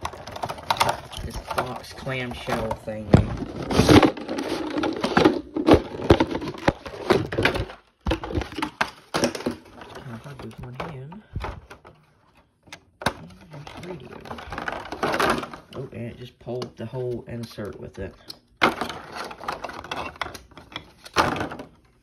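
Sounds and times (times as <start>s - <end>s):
plastic packaging crackling: 0.0s - 11.6s.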